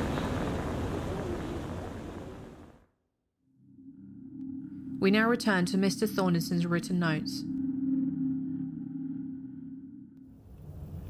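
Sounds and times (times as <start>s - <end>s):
low steady hum: 3.5s - 11.0s.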